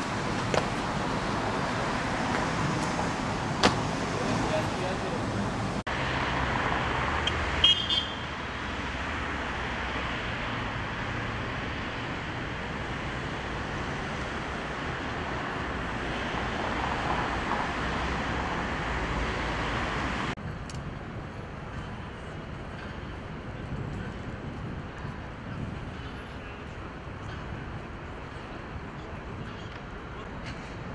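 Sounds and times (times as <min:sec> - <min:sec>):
road traffic: 0:00.0 - 0:30.9.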